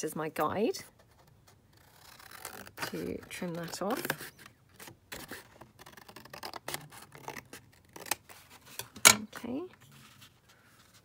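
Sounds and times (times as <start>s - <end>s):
paper rustling: 1.0s - 11.0s
scissors cutting paper: 1.7s - 8.9s.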